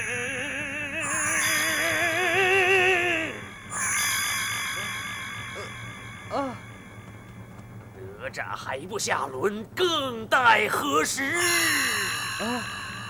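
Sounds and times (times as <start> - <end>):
high ringing chord: 0.0 - 7.8, 11.2 - 13.0
eerie synthesized wavering tone: 0.0 - 8.2, 11.3 - 13.0.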